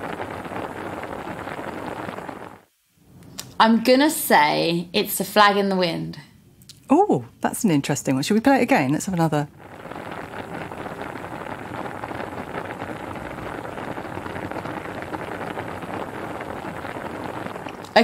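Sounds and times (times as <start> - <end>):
pasta boiling in water: 0.0 - 2.8, 7.8 - 18.0.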